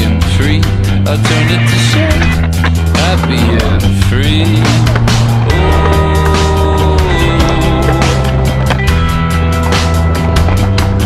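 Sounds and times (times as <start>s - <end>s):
song with drum beat and bass: 0.0s - 11.0s.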